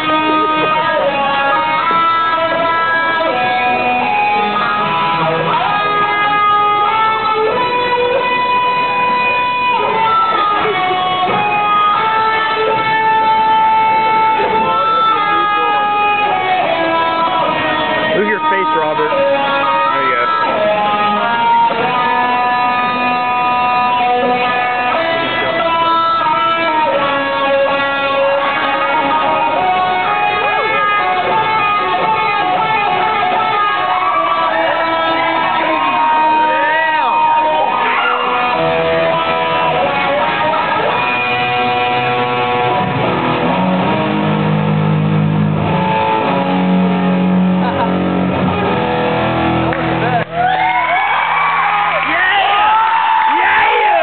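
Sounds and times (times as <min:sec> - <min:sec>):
guitar playing: 0:00.0 - 0:54.0.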